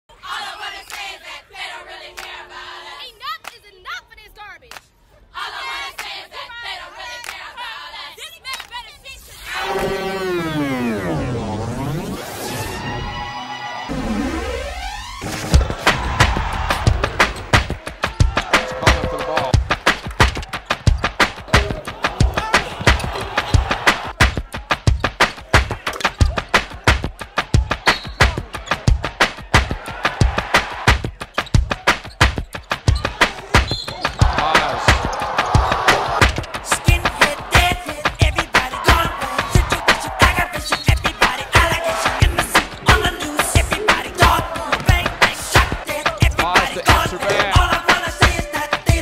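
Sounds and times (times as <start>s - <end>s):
crowd cheering and yelling: 9.2s - 49.0s
music with heavy fast drum beat: 15.4s - 49.0s.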